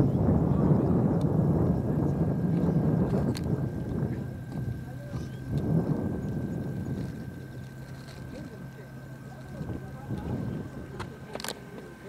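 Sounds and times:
jet engine whine: 0.0 - 12.0
jet engines rumbling: 0.0 - 12.0.

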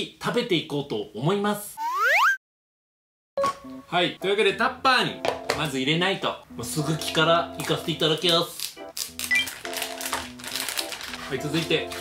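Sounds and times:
background music held notes: 3.4 - 12.0
plastic pouch crinkling: 8.1 - 12.0.

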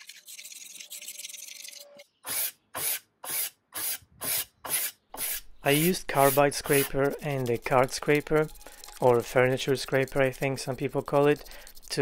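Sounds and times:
hand scraper scraping wood: 2.3 - 12.0.

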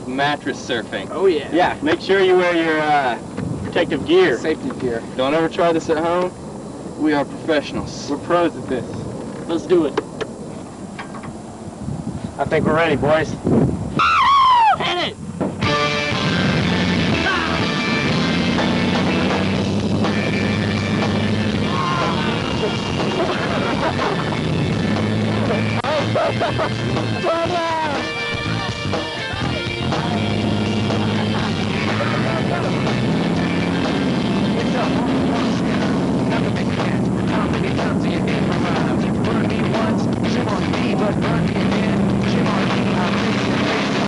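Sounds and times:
people shouting: 14.0 - 15.0, 21.5 - 24.2, 25.8 - 30.0
rock music: 15.6 - 44.0
person shouting: 21.6 - 22.9, 27.2 - 28.1.

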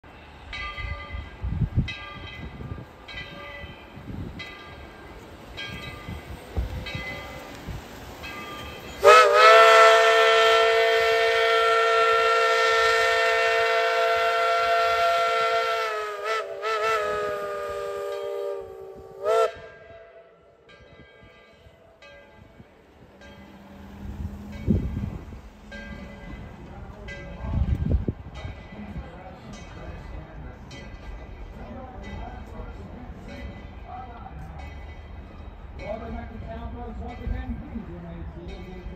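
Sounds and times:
locomotive bell ringing: 0.1 - 15.9, 19.6 - 38.9
steam locomotive chime whistle: 8.2 - 20.7.

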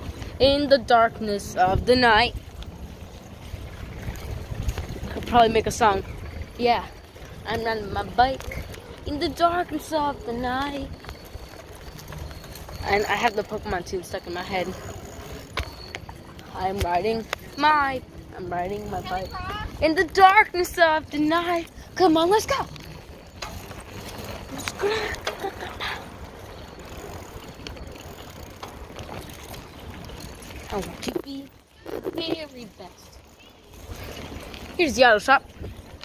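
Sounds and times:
wind rumble on microphone: 0.0 - 20.2, 33.2 - 36.0
light bicycle clicks: 2.3 - 18.0, 18.6 - 36.0.

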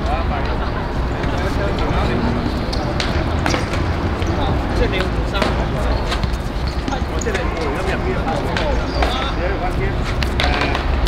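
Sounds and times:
steady low rumble: 0.0 - 5.9
players calling out: 0.0 - 11.0.

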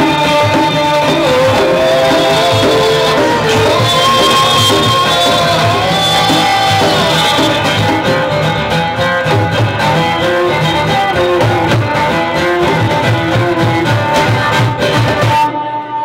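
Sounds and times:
hand drums rhythm: 0.0 - 15.5
strummed acoustic guitars: 0.0 - 16.0
bowed viola melody: 1.2 - 8.1.

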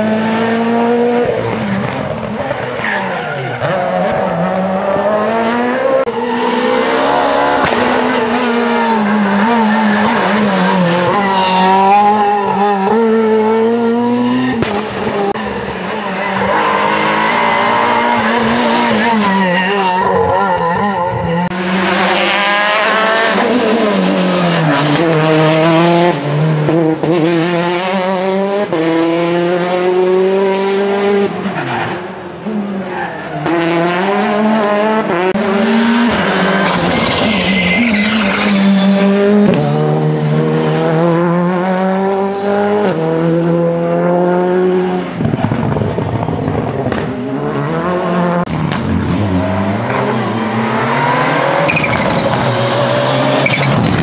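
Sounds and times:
rally car engines revving: 0.0 - 54.0.

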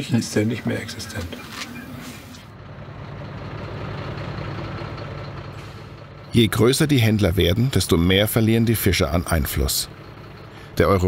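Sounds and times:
truck engine running: 0.0 - 11.0.

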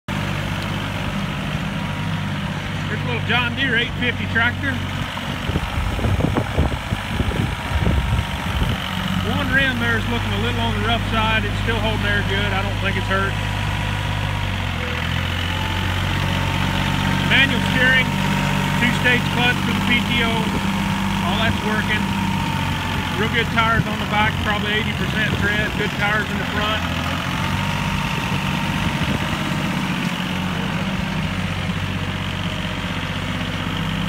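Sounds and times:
tractor diesel engine running: 0.0 - 34.0.

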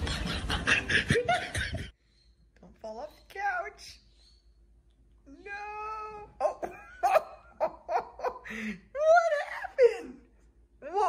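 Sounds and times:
person laughing: 0.0 - 1.9, 6.4 - 10.2.

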